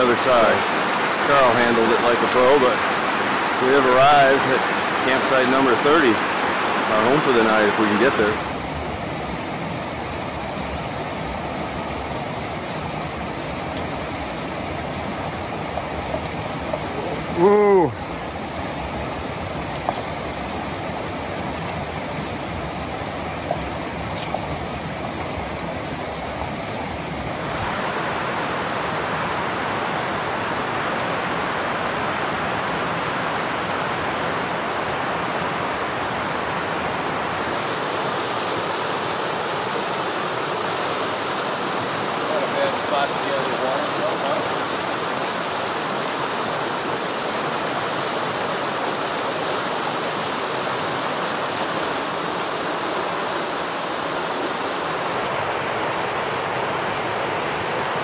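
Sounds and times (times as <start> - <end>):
stream rushing over rocks: 0.0 - 58.0.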